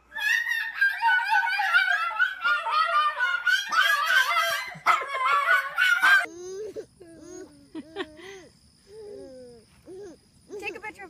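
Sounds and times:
small dog howling: 0.1s - 7.5s.

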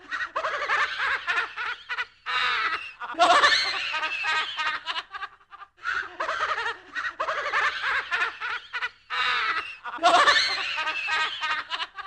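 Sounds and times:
spooky laugh: 0.0s - 12.0s.

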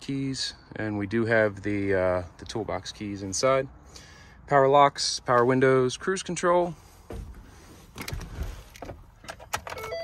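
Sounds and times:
electronic key-on chime: 9.8s - 10.0s.

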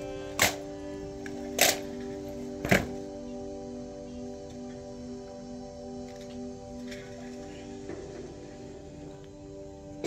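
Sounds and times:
soft sustained music: 0.0s - 10.0s.

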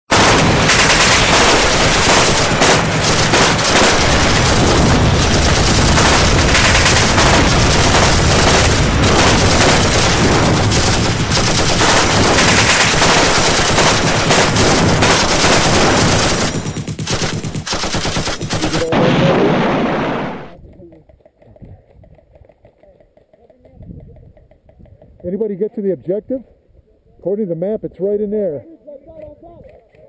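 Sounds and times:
rapid automatic gunfire: 0.1s - 24.6s.

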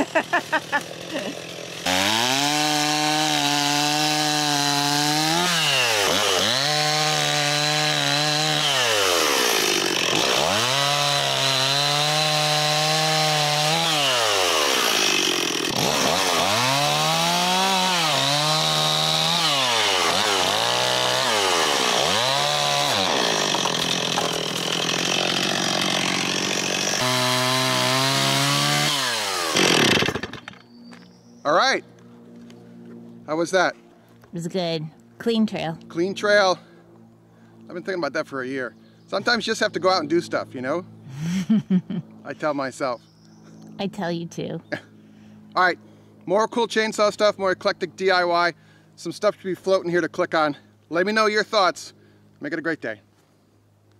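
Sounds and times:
chainsaw cutting logs: 0.0s - 30.8s.

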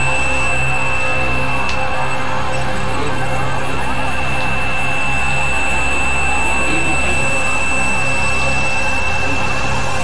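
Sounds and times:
high held synthesizer tones: 0.0s - 10.0s
low synthesizer drone: 0.0s - 10.0s.

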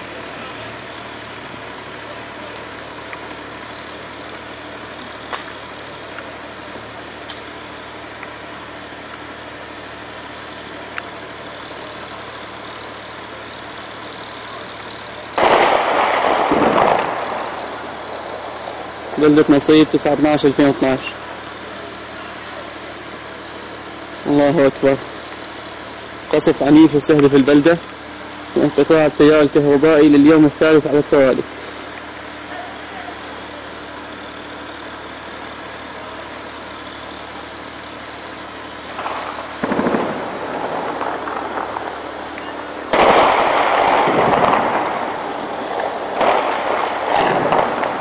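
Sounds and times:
engine-like hum: 0.0s - 48.0s
low background rumble: 0.0s - 48.0s
cannon booms: 15.4s - 17.5s, 39.0s - 42.0s, 42.9s - 45.2s, 45.8s - 48.0s
heavy weapons fire: 15.4s - 17.6s, 39.0s - 42.0s, 42.9s - 48.0s.

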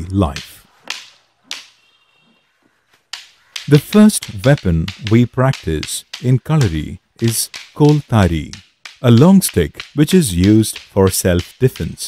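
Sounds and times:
fighting sticks cracking: 0.2s - 2.0s, 2.9s - 12.0s.

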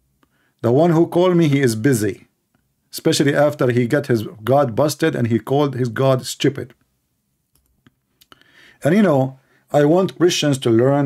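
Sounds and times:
soft hiss: 0.0s - 11.0s
faint sharp clicks: 7.5s - 8.4s.

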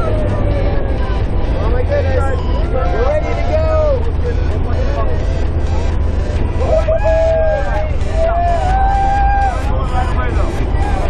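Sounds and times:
raised voices: 0.0s - 11.0s.

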